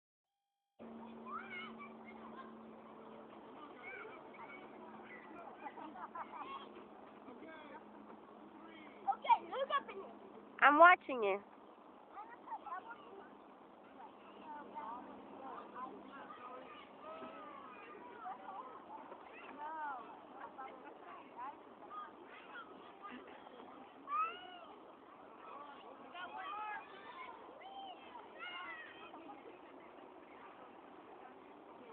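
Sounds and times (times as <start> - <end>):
steady low hum: 0.8 - 31.9
children shouting and squealing: 1.0 - 3.0, 3.6 - 6.8, 16.1 - 20.2, 21.9 - 29.3
child shouting: 1.2 - 1.9.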